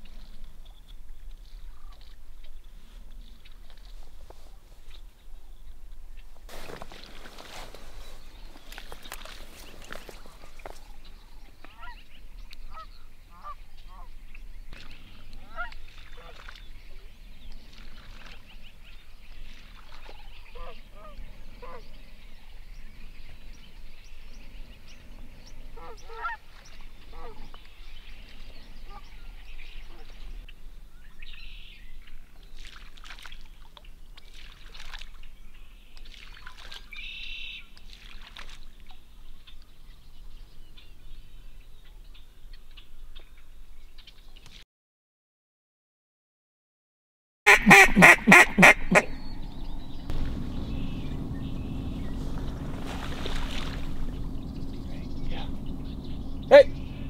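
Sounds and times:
rustling noise: 2.7s - 5.2s, 6.2s - 11.0s, 50.1s - 54.3s
geese honking: 25.8s - 26.4s, 47.5s - 57.0s.

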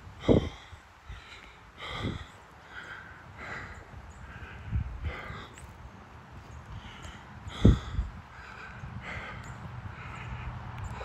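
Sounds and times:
heavy breathing: 0.2s - 11.0s.

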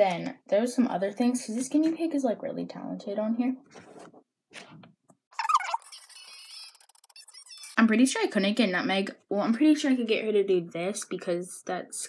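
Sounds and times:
guinea pig squealing: 5.4s - 7.8s.

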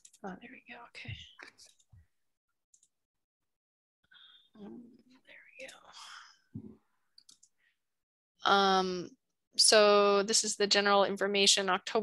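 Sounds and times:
person whispering: 0.2s - 1.7s, 4.5s - 6.2s.

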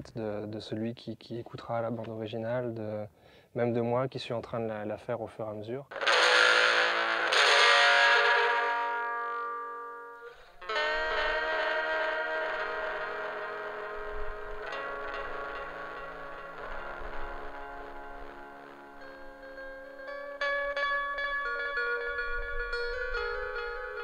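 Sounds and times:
electric guitar chords ringing: 5.9s - 24.0s.

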